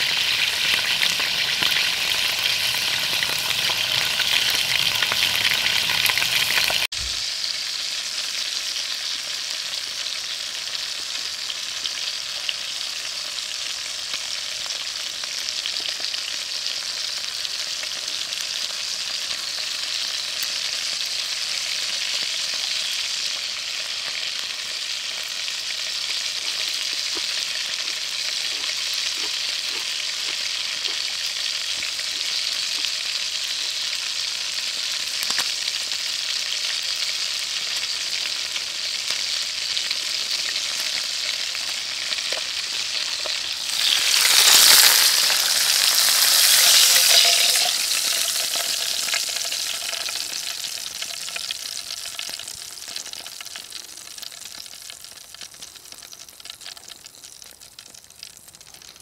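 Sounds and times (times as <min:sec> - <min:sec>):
hamburger patty sizzling in pan: 0:00.0 - 0:59.0.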